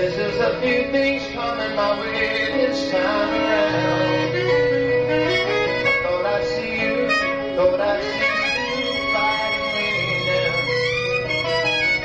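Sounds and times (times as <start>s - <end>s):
bass line: 0.0s - 12.0s
guitar: 0.0s - 12.0s
saxophone melody: 2.4s - 12.0s.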